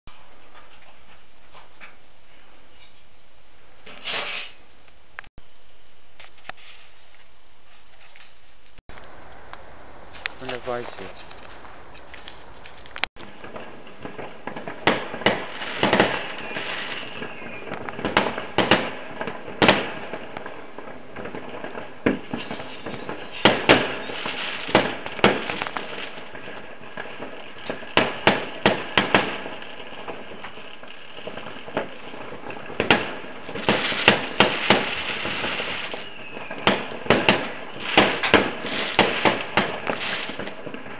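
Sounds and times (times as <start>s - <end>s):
fireworks crackling: 3.8s - 4.6s, 6.1s - 40.9s
fireworks bangs: 8.9s - 40.9s.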